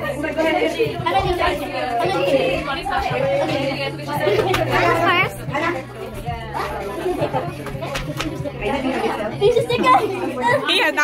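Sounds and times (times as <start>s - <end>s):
overlapping chatter: 0.0s - 11.0s.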